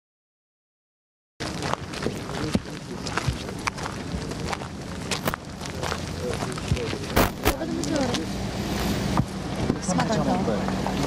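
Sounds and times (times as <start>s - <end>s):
outdoor noise: 1.4s - 11.0s
vehicle engine humming: 1.4s - 11.0s.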